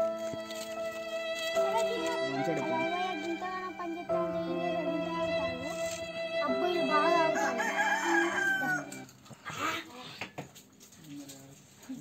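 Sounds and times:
background music with held chords: 0.0s - 9.1s
rooster crowing: 7.1s - 9.1s.

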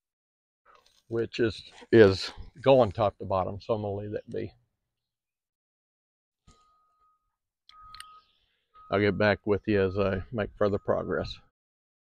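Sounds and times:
faint steady high tone: 6.5s - 11.5s.

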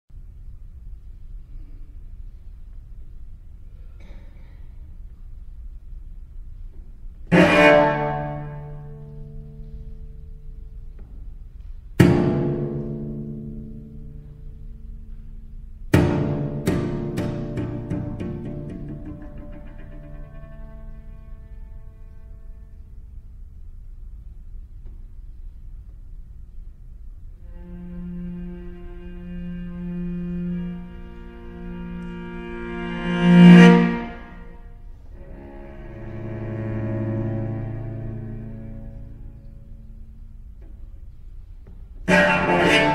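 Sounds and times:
cello chords: 5.0s - 25.1s, 27.1s - 42.9s.

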